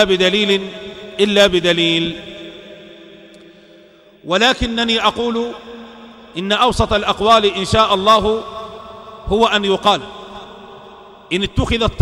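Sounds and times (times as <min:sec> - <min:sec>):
man's voice echoing: 0:00.0 - 0:12.0.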